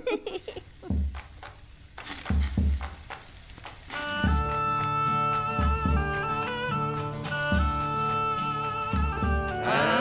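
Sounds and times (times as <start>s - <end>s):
meat sizzling: 0.0s - 5.2s
fire crackling: 0.0s - 10.0s
folk music with pipe and lute: 3.9s - 10.0s.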